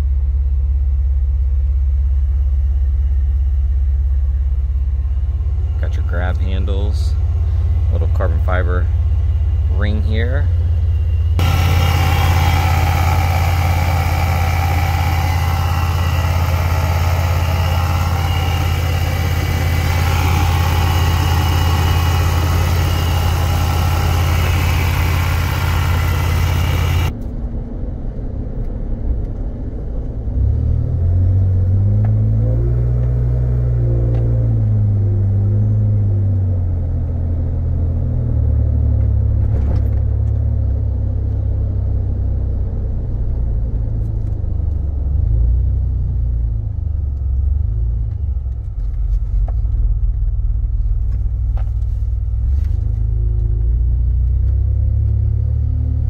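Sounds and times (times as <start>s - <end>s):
car engine running and revving: 0.0s - 27.3s, 28.9s - 56.0s
supercharger hiss: 11.4s - 27.1s.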